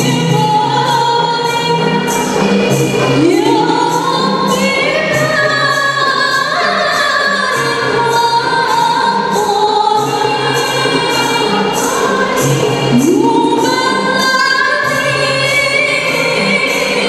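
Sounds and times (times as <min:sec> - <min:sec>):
women singing together: 0:00.0 - 0:17.0.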